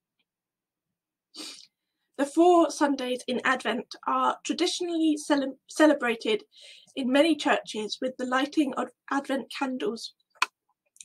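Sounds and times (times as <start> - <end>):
woman's sharp intake of breath: 1.4 - 1.7
woman speaking: 2.2 - 10.2.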